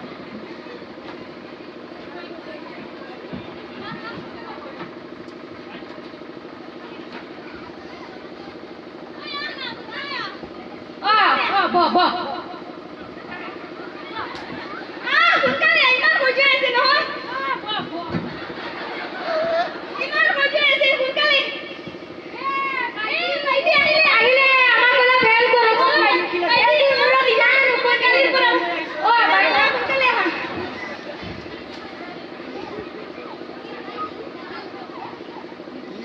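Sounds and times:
machine drone with low hum: 0:00.0 - 0:36.0
high-pitched voices through loudspeaker: 0:22.9 - 0:31.1.

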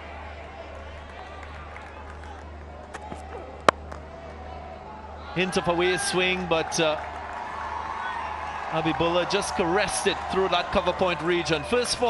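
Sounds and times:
stadium crowd murmur: 0:00.0 - 0:12.0
cricket bat striking ball: 0:02.9 - 0:04.0.

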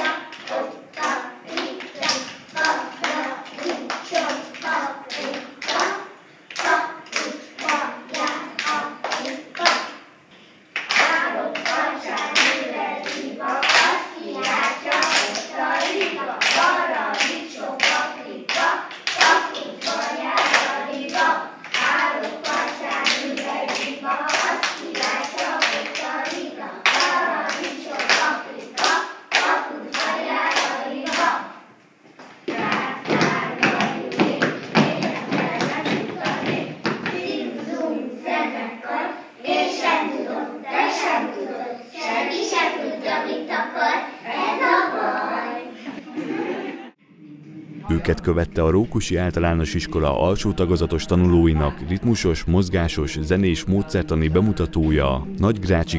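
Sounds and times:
children chanting in unison: 0:00.0 - 0:10.0, 0:10.9 - 0:31.6, 0:32.5 - 0:45.9
children clapping a beat: 0:00.0 - 0:10.0, 0:10.8 - 0:31.4, 0:32.2 - 0:37.4, 0:48.0 - 0:55.9.

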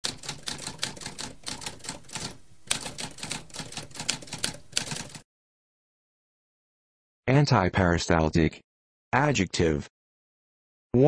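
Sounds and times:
typewriter keys clacking: 0:00.0 - 0:05.2.

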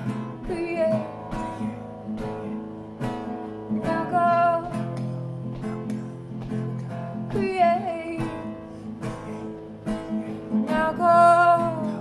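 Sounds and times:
person singing: 0:00.0 - 0:02.6, 0:03.7 - 0:09.5, 0:10.5 - 0:12.0
acoustic guitar strumming: 0:00.0 - 0:12.0.

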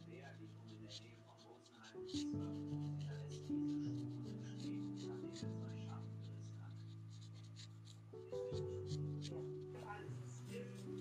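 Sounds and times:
pencil sketching on paper: 0:00.0 - 0:11.0
soft background music chord: 0:00.0 - 0:11.0.

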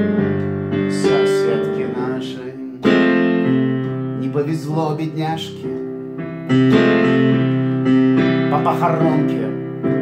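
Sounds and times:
piano chords ringing: 0:00.0 - 0:10.0.

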